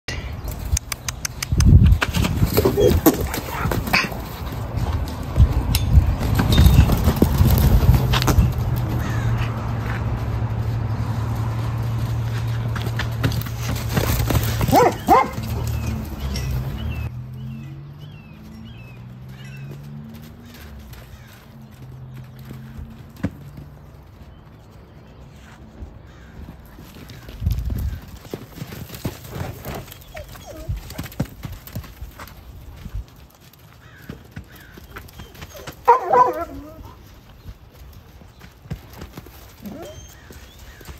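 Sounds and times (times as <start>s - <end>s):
horse hooves on sand: 0.4s - 40.9s.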